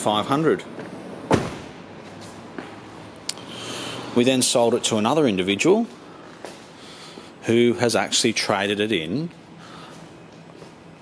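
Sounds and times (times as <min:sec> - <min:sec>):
car door shutting thud: 0:01.3 - 0:01.7.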